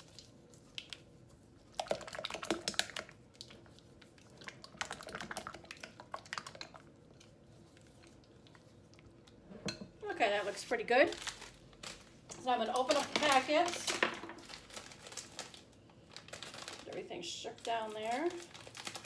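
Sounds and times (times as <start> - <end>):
spatula stirring thick cream: 0.0 - 9.4.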